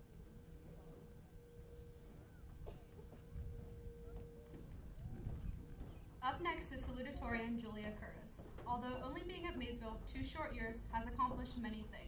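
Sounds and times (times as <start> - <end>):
faint knocks and rustles: 0.0 - 9.0
wind rumble on microphone: 0.0 - 9.0.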